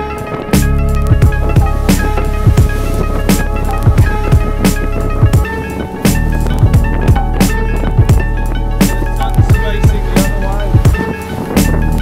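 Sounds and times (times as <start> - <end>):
deep kick drums: 0.6 - 5.5, 6.1 - 11.0
steady bass: 0.6 - 12.0.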